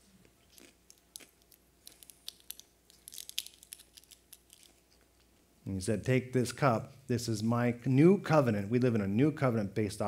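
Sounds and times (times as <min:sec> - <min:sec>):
bread crunching while eaten: 0:00.2 - 0:05.3
packaging crinkling: 0:00.5 - 0:05.0.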